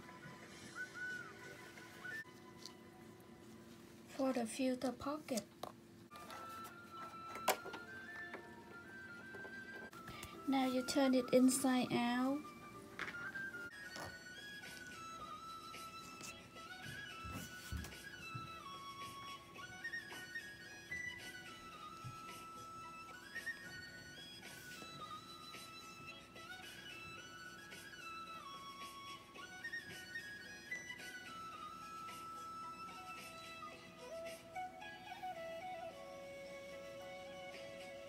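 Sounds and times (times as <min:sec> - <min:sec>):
instrumental background music: 0:00.0 - 0:38.0.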